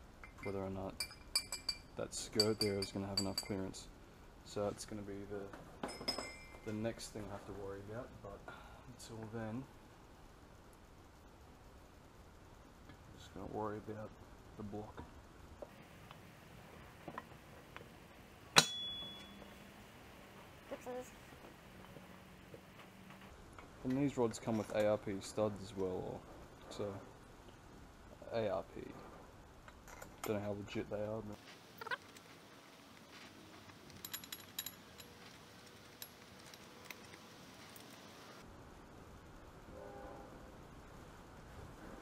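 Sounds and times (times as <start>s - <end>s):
metal parts clinking: 33.8s - 37.1s.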